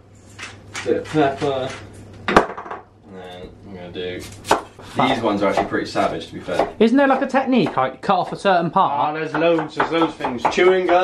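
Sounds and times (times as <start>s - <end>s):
knock on wooden chopping board: 9.3s - 11.0s.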